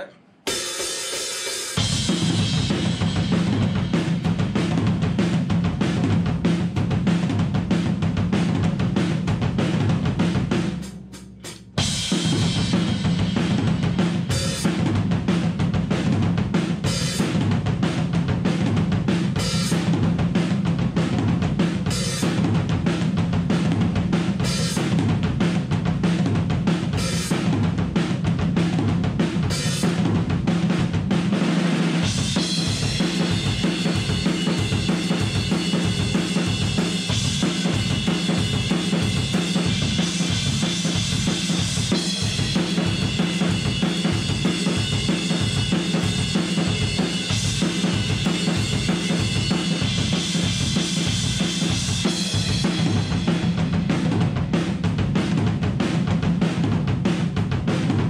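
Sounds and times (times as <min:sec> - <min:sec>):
drum kit groove: 0:00.0 - 0:58.0.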